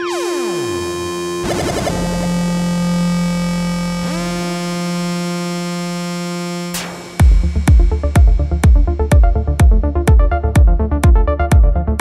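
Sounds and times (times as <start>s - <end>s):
synthesizer chords sweeping: 0.0s - 12.0s.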